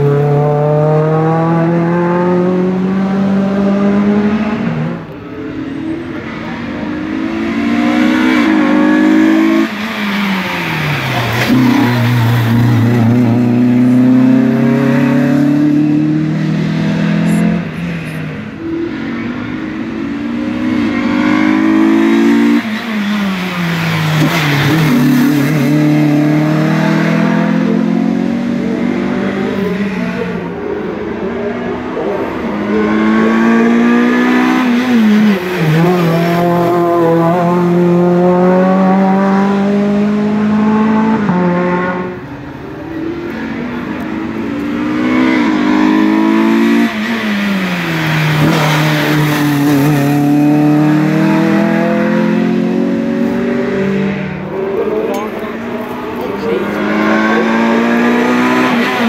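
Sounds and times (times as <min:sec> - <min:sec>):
racing car engines accelerating: 0:00.0 - 0:59.0.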